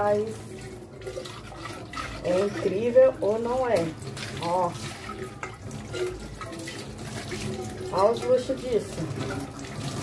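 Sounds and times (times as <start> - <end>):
tap water splashing off a pot: 0.0 - 10.0.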